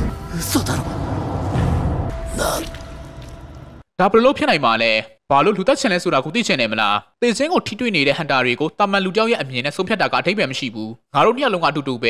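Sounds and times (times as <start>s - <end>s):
low rumble: 0.0s - 3.8s.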